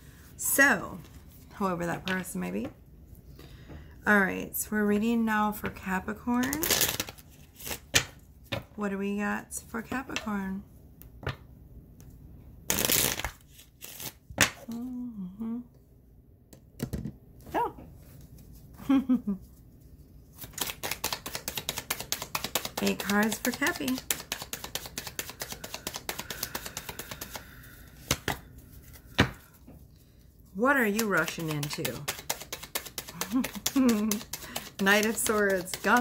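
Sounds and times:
cards being shuffled: 6.4 - 8.7, 12.7 - 14.8, 20.3 - 29.6, 30.7 - 36.0.

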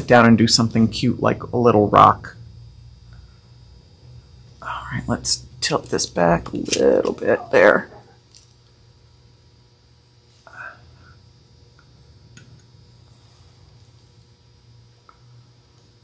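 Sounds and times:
low electrical hum: 0.0 - 16.0
faint murmur: 6.2 - 8.3.

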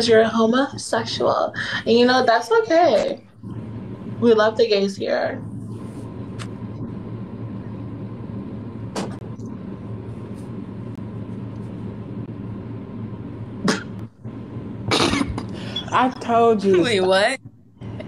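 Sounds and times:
low line noise hum: 0.0 - 18.0
noisy burst: 0.0 - 18.0.

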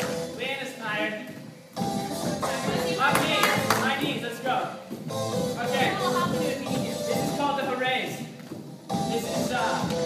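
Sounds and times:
aerobics class music: 0.0 - 10.0
hands clapping: 3.0 - 4.0.

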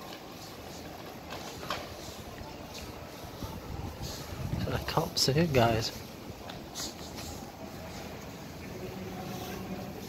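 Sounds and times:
traffic hum: 0.0 - 10.0
man's voice: 4.6 - 6.0.

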